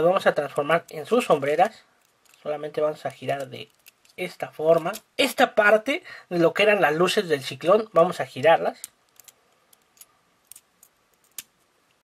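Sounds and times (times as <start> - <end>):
faint clicks of plastic parts: 2.0 - 4.2, 8.8 - 12.0.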